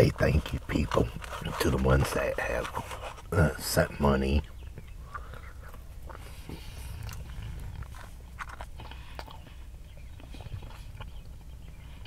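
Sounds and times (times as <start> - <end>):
low steady hum: 0.0 - 12.0
chewing mouth sounds: 4.4 - 12.0.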